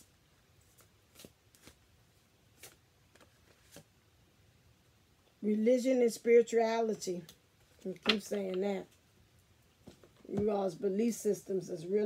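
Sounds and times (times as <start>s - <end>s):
cards being shuffled: 0.6s - 1.9s, 2.5s - 3.9s.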